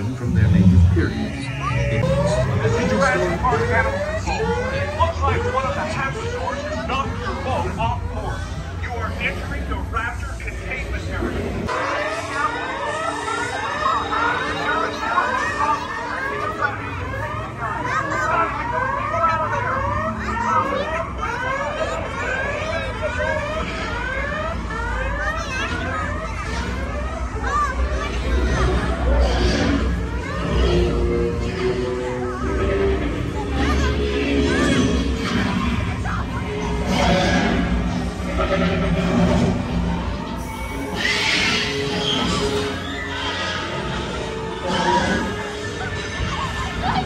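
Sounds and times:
electronic alarm whooping: 0.8 - 8.7, 39.3 - 47.0
dinosaur screeches: 40.4 - 46.6.

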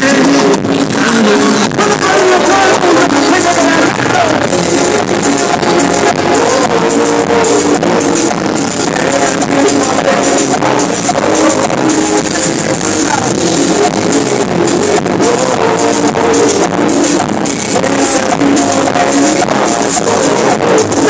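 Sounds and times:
live cumbia band with horns: 0.0 - 21.0.

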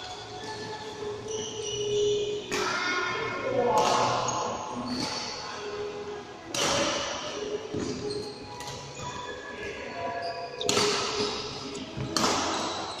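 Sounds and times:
shoes squeaking on court floor: 0.0 - 2.7, 7.7 - 13.0
racket hitting shuttlecock: 6.5 - 7.2, 10.6 - 11.4, 12.1 - 12.8.

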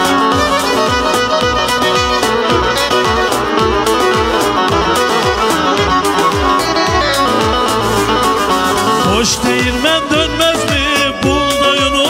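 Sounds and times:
bowed fiddle fast melody: 0.0 - 12.0
steady percussion beat: 0.0 - 12.0.

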